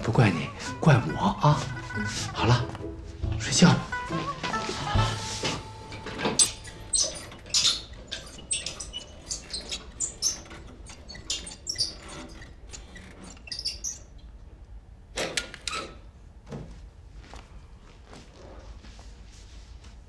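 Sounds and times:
hand crank squeaks and clicks: 6.0s - 14.3s, 15.2s - 16.0s.

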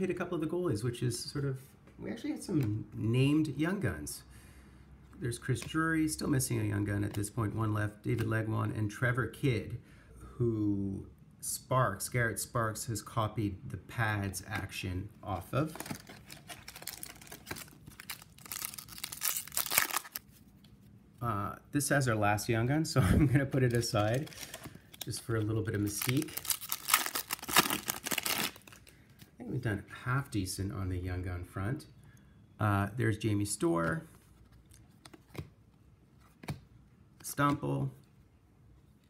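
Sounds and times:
foil wrapper crinkling and tearing: 15.7s - 20.3s, 23.6s - 29.0s.

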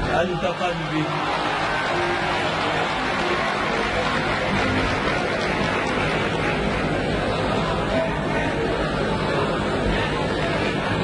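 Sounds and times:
audience applauding: 0.2s - 8.4s.

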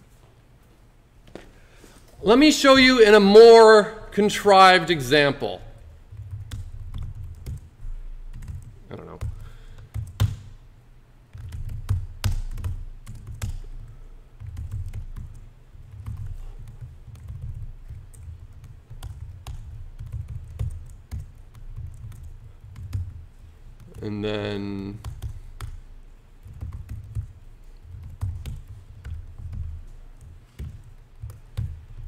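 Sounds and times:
computer keyboard typing: 6.1s - 10.5s, 11.3s - 23.2s, 24.7s - 32.0s.

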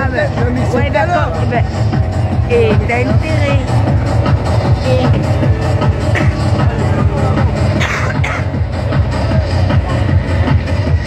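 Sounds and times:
heavy bass beat: 0.0s - 11.0s
loud fast techno music: 0.0s - 11.0s.

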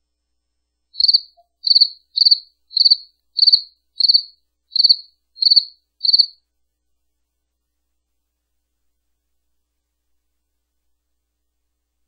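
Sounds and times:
cricket chirping: 1.0s - 6.4s.

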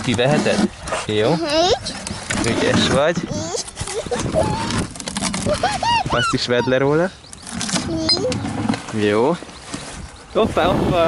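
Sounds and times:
plastic bucket and lid handled: 0.0s - 6.5s
child's high-pitched squeaks: 1.3s - 2.1s, 3.3s - 6.7s, 7.8s - 8.4s.

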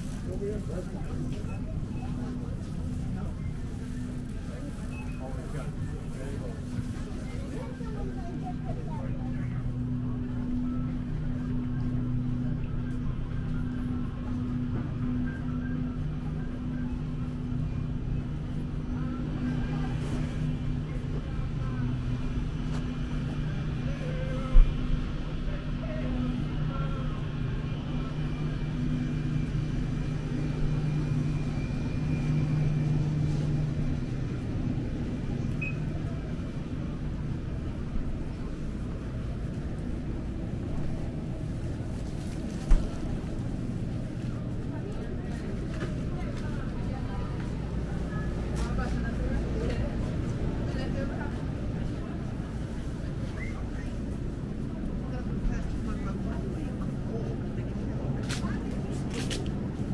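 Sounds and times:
faint shoppers' voices: 0.0s - 59.9s.

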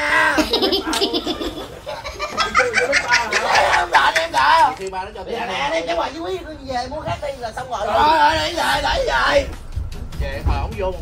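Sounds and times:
young men laughing: 0.2s - 4.8s.

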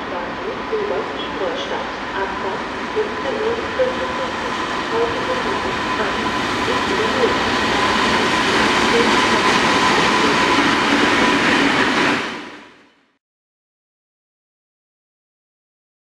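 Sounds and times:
diesel locomotive engine: 0.0s - 13.1s.

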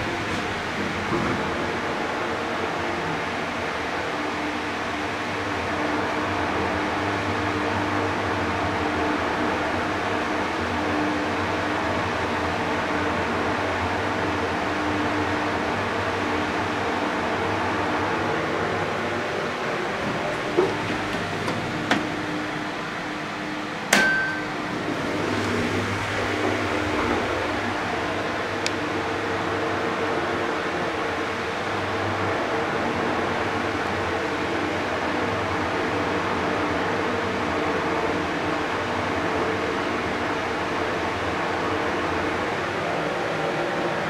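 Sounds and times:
elevator mechanical hum: 0.0s - 44.0s
sharp knock: 23.9s - 24.5s.

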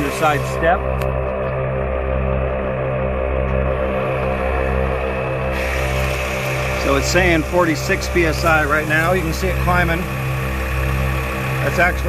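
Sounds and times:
air compressor humming: 0.0s - 12.0s.

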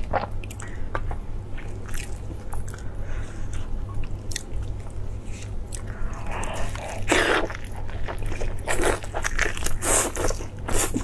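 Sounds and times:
steady low hum: 0.0s - 11.0s
person chewing meat: 0.1s - 11.0s.

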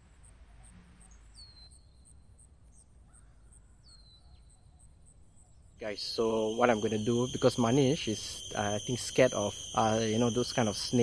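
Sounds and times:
high-pitched insect chirp: 5.8s - 11.0s
low background hum: 5.8s - 11.0s.

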